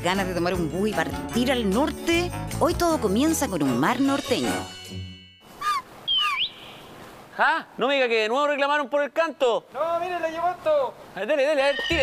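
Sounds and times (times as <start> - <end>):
faint outdoor background: 0.0 - 12.0
bird chirping: 5.6 - 7.1.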